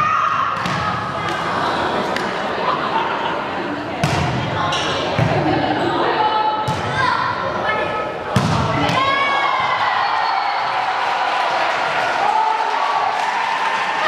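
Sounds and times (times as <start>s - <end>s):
volleyball hits echoing: 0.5s - 2.4s, 4.0s - 5.8s, 6.6s - 7.1s, 8.3s - 9.8s.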